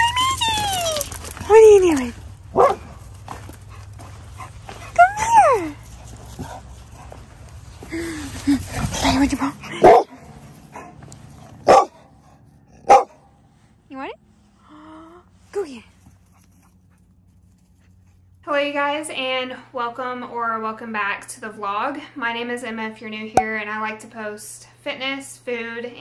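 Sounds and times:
dog whining: 0:00.0 - 0:01.5
dog barking: 0:02.5 - 0:03.0, 0:09.8 - 0:10.2, 0:11.6 - 0:12.1, 0:12.8 - 0:13.2.

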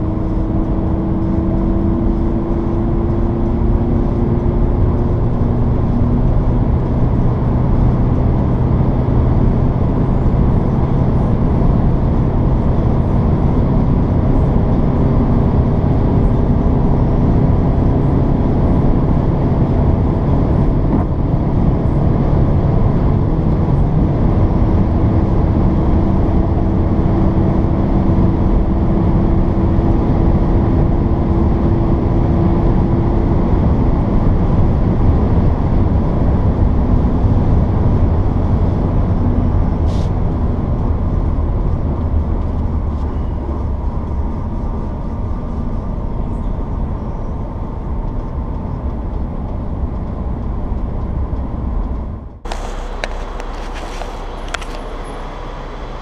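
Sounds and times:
car cabin drone and tyre rumble: 0:00.0 - 0:56.0.

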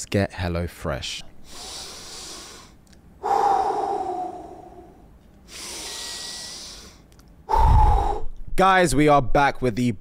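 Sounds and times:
breathy exhale: 0:01.4 - 0:08.3
man breathing in: 0:01.4 - 0:08.4.

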